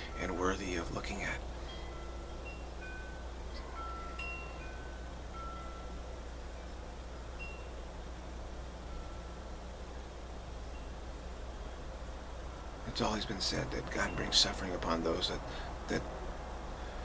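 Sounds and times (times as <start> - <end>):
chimes ringing: 0.0 - 9.9, 13.7 - 15.6
steady low hum: 0.0 - 17.0.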